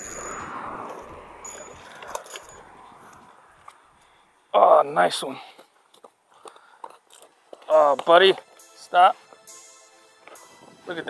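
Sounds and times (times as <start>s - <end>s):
fishing reel clicking: 1.4s - 2.6s.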